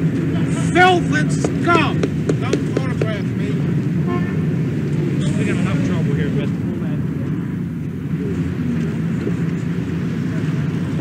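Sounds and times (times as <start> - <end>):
crowd voices: 0.0 - 11.0
low traffic rumble: 0.0 - 11.0.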